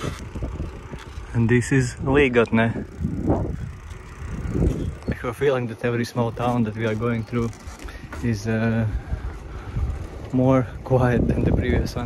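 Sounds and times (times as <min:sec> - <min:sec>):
wind on microphone: 0:00.0 - 0:05.5, 0:06.3 - 0:12.0
bicycle tyre road noise: 0:00.0 - 0:12.0.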